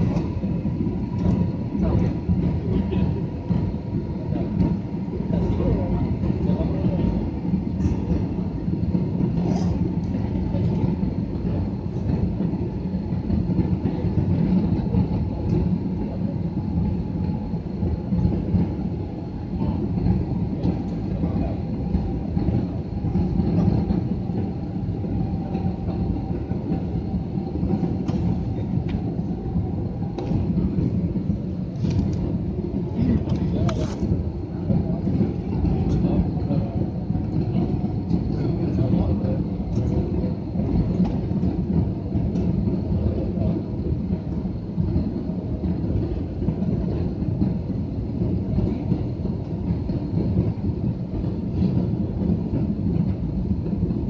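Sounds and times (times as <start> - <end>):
airliner cabin rumble: 0.0 - 54.0.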